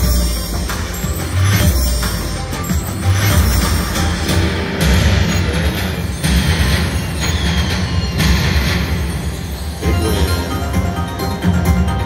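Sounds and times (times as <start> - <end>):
slot machine music and effects: 0.0 - 12.0.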